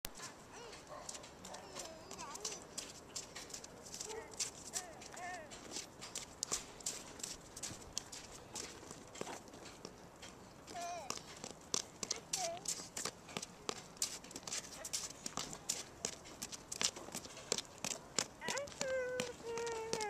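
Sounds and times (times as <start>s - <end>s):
footsteps on slushy sidewalk: 0.1s - 20.0s
toddler vocal sounds: 0.5s - 0.9s, 10.7s - 11.2s.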